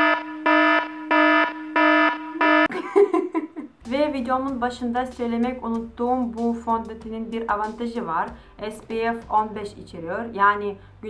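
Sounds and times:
electronic alarm beeping: 0.0 - 2.7.

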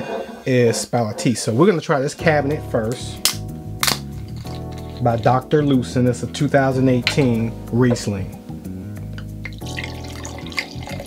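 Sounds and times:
wine pouring into a glass: 9.4 - 11.0.

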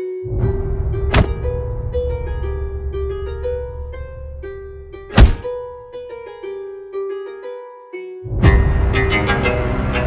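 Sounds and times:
plucked background music: 0.0 - 10.0
heavy punch thud: 1.1 - 1.5, 5.1 - 5.5.

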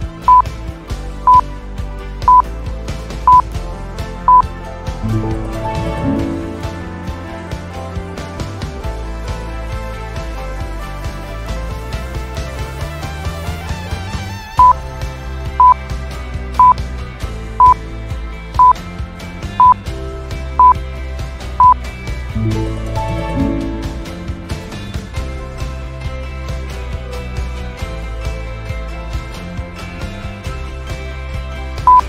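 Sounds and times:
background music with steady beat: 0.0 - 32.0
short loud electronic beeps: 0.3 - 0.5, 3.3 - 3.5, 4.3 - 4.5, 19.6 - 19.8.

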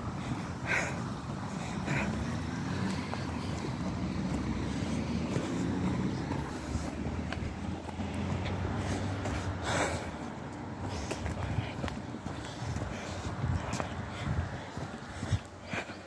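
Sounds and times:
vehicle engine rumbling: 0.0 - 16.0.

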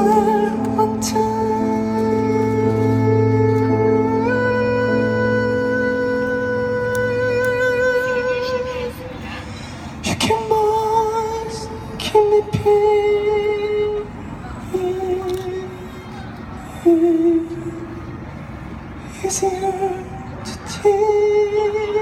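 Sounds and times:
electric piano chords: 0.0 - 8.9
man singing: 0.0 - 9.0, 10.0 - 16.2, 16.8 - 17.8, 19.1 - 22.0.

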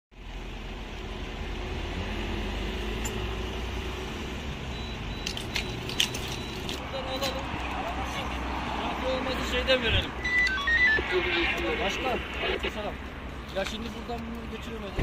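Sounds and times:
traffic rumble: 0.1 - 15.0.

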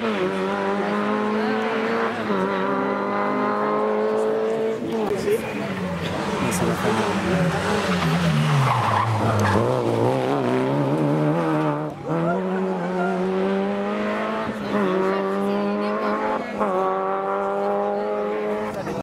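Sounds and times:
rally car engine accelerating: 0.0 - 19.0.

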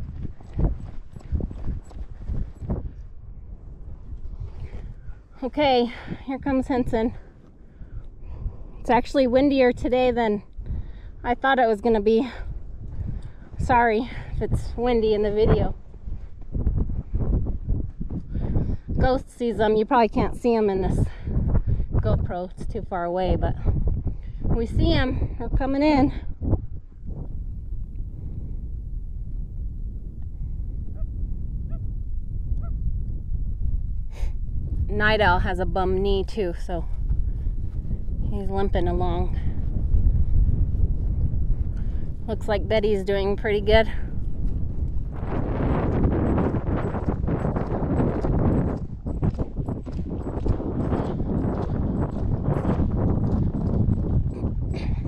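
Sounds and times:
horse hoofbeats on sand: 0.0 - 3.2, 34.8 - 55.0
wind on microphone: 0.0 - 55.0.

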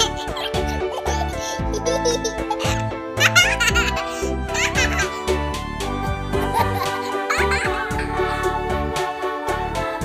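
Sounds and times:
baby giggling: 0.0 - 5.2
children's background music: 0.0 - 10.0.

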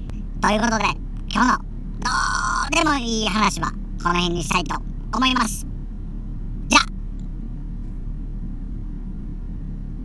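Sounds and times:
low electrical hum and hiss: 0.0 - 10.0.

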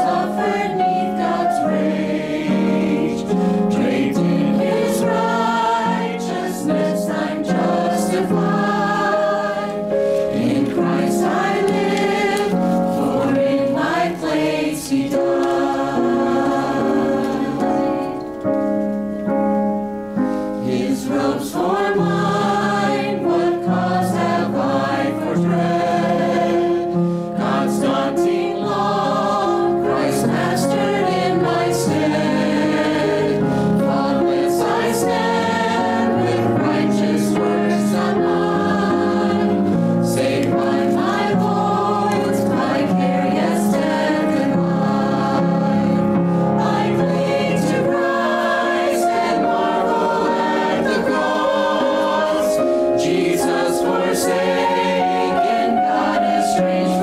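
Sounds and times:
church choir singing: 0.0 - 18.9, 20.1 - 57.0.

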